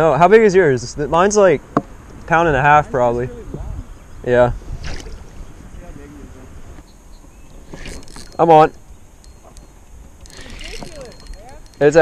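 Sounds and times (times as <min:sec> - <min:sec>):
wind rumble on microphone: 0:00.9 - 0:09.1.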